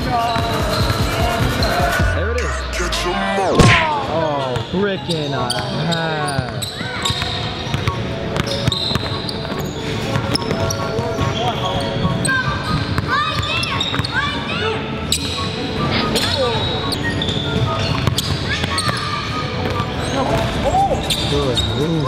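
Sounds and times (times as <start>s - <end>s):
sneakers squeaking on hardwood floor: 0.0s - 1.8s, 4.6s - 22.0s
voices murmuring: 0.0s - 22.0s.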